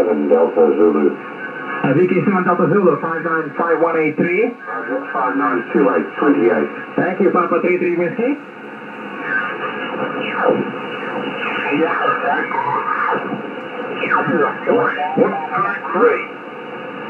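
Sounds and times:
steady radio band noise: 0:00.0 - 0:17.0
radio voices swooping in pitch: 0:09.1 - 0:15.9.

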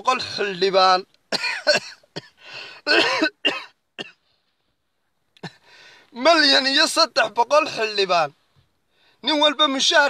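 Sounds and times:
man coughing: 0:01.3 - 0:04.2, 0:05.4 - 0:05.7.

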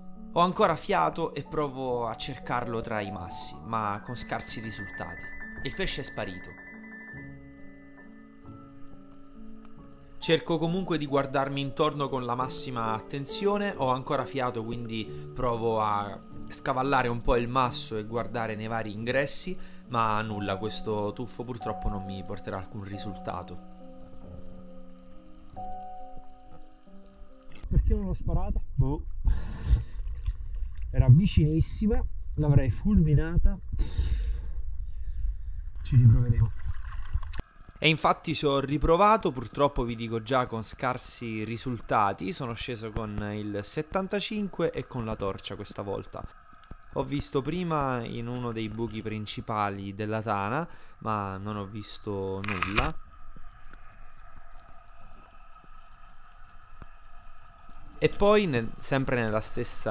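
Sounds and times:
underwater low rumble: 0:24.3 - 0:37.8, 0:53.0 - 0:59.4
faint steady hum: 0:38.5 - 0:59.9.

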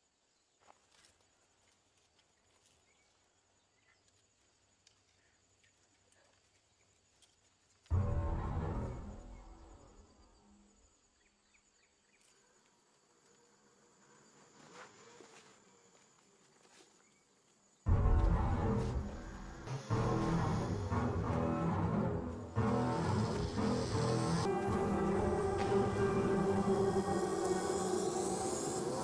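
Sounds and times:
faint insect chirring: 0:08.6 - 0:17.9.

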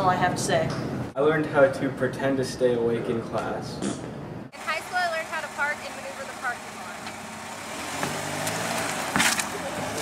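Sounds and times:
car engine pulling away: 0:04.6 - 0:10.0.

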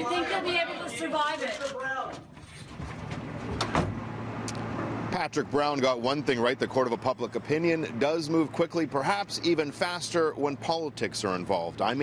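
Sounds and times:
wooden door shutting: 0:02.1 - 0:04.0.

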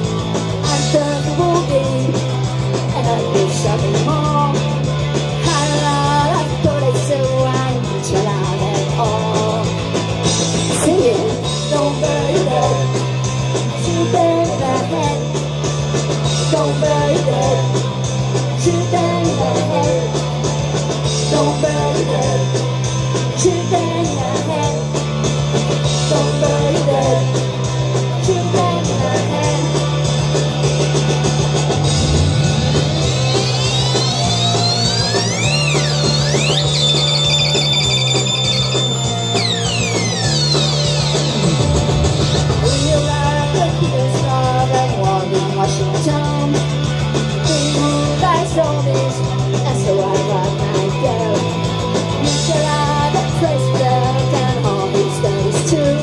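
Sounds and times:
punk rock band playing: 0:00.0 - 0:56.0
high electronic tone sweeping: 0:32.0 - 0:44.0.

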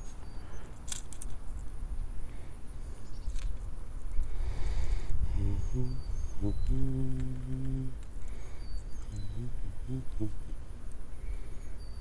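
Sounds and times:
man humming: 0:05.2 - 0:08.3, 0:09.0 - 0:10.9.

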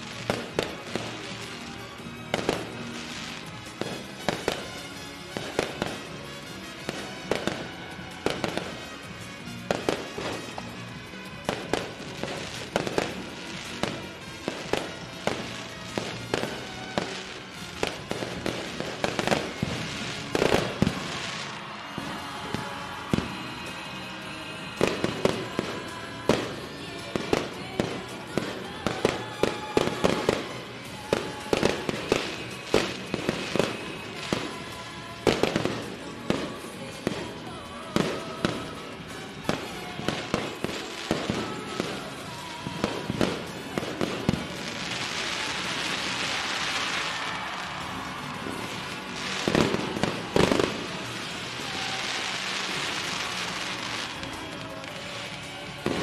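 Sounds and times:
fireworks bangs: 0:00.0 - 0:56.0
music playing: 0:00.0 - 0:56.0.

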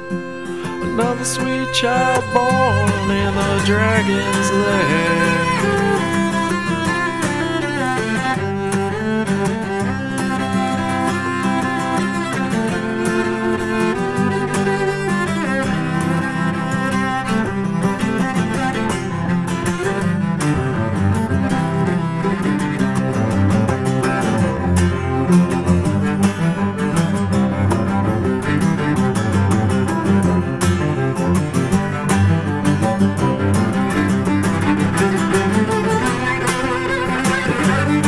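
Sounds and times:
instrumental folk music with cello: 0:00.0 - 0:38.0.

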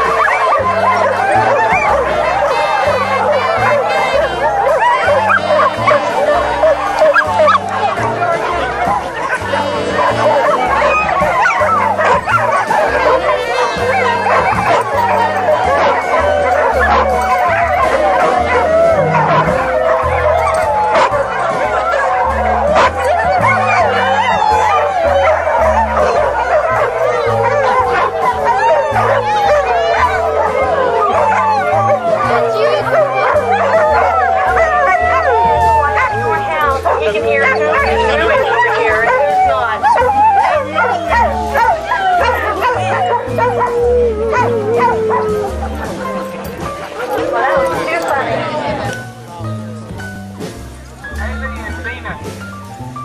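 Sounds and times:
background music with bass line: 0:00.0 - 0:53.0
dogs yipping barking and whining: 0:00.0 - 0:53.0.

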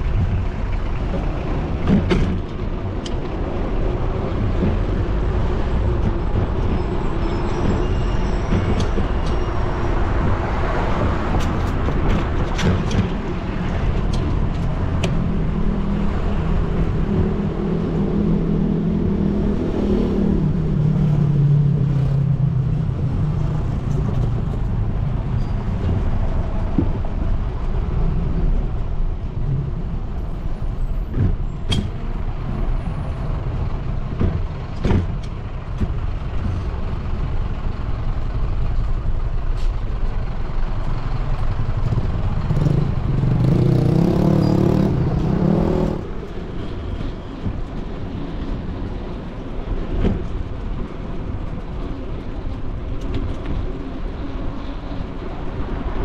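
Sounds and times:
street traffic rumble: 0:00.0 - 0:56.0
vehicle engine passing: 0:41.8 - 0:46.2.

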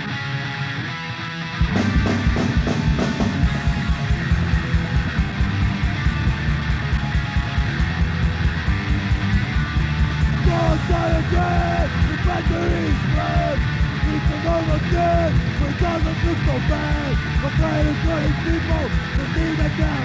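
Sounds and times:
high bending guitar notes: 0:00.0 - 0:20.0
punk band playing fast: 0:00.0 - 0:20.0.

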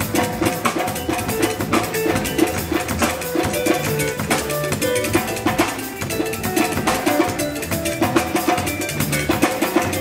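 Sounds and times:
drum kit rhythm: 0:00.0 - 0:10.0
live band music: 0:00.0 - 0:10.0.

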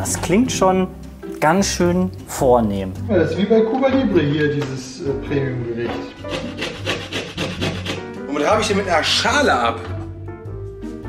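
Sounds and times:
lime rasping on metal grater: 0:06.2 - 0:08.0.

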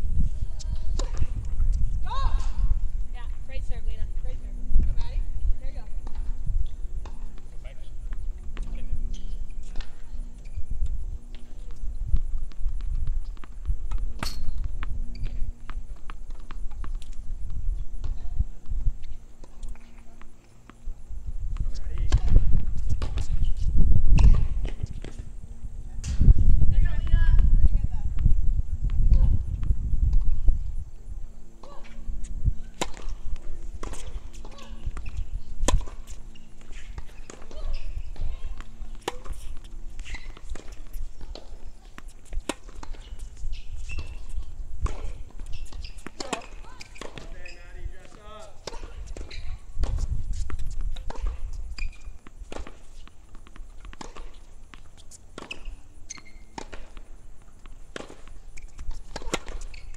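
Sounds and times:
tennis ball bouncing: 0:00.8 - 0:25.3, 0:31.6 - 0:59.9.

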